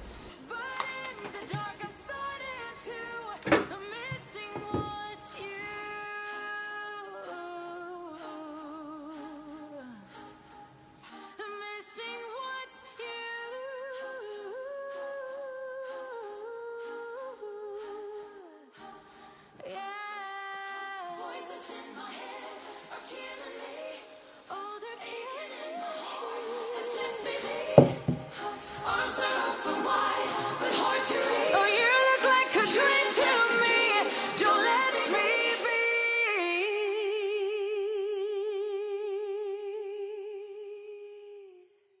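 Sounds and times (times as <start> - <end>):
singing voice with vibrato: 0.0 - 42.0.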